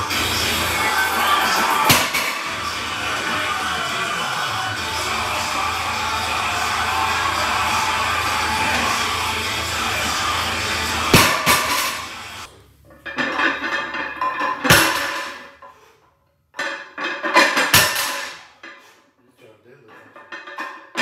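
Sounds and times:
music: 0.0 - 12.5
barbell plates clanking down: 0.1 - 4.4, 10.9 - 12.2, 12.9 - 15.7, 16.6 - 18.8, 20.0 - 21.0.

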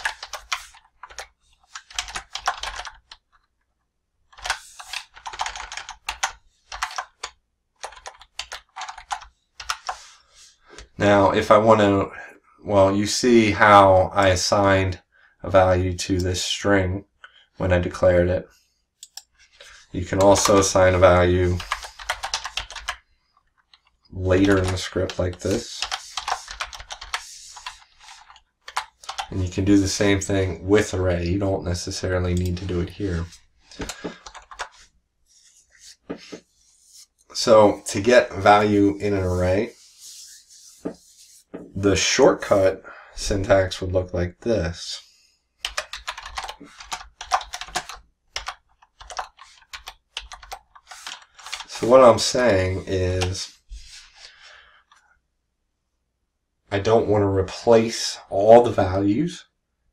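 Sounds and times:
computer keyboard typing: 0.0 - 3.4, 4.3 - 10.0, 20.1 - 23.0, 23.6 - 29.9, 32.3 - 32.9, 33.8 - 34.8, 45.6 - 51.9.

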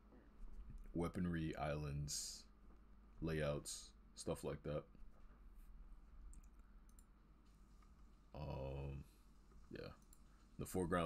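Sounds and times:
faint computer mouse clicks: 6.3 - 7.1.

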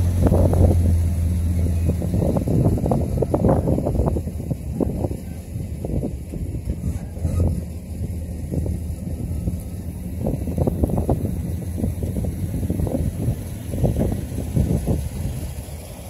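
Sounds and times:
pickup engine approaching: 0.0 - 16.0
wind buffeting microphone: 0.0 - 16.0.

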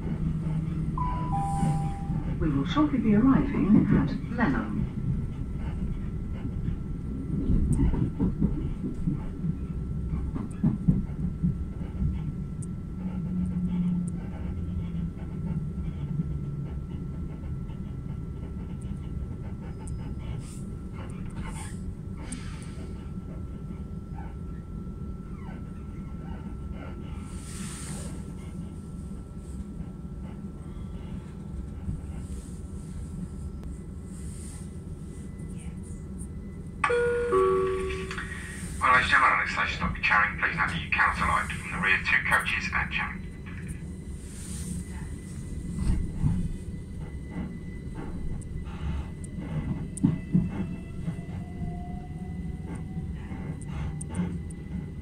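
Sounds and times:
train low rumble: 0.0 - 55.0
two-note descending chime: 1.0 - 2.2.

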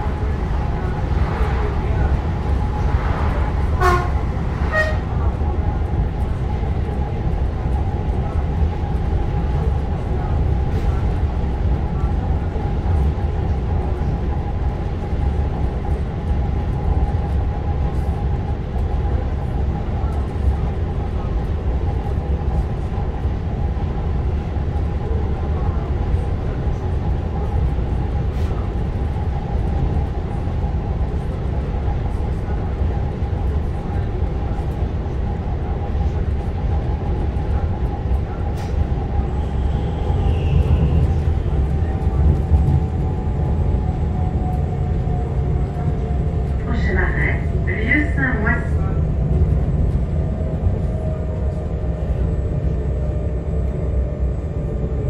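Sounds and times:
train whine: 0.0 - 17.1, 30.2 - 55.0
train running gear rumble: 0.0 - 55.0.

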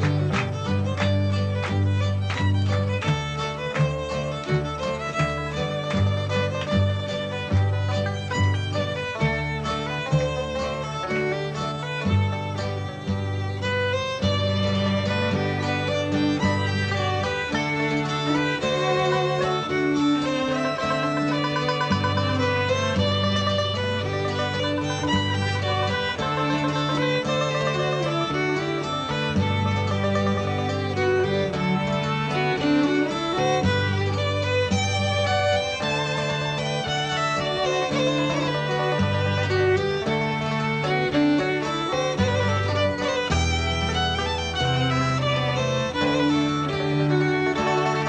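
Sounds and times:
acoustic guitar: 0.0 - 48.0
banjo: 0.0 - 48.0
cello: 0.0 - 48.0
fiddle melody: 0.0 - 48.0
held bass notes: 0.0 - 48.0.

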